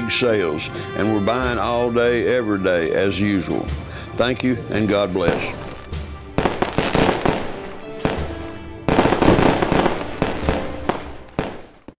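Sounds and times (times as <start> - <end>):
background music: 0.0 - 12.0
fireworks bangs and crackles: 3.6 - 12.0.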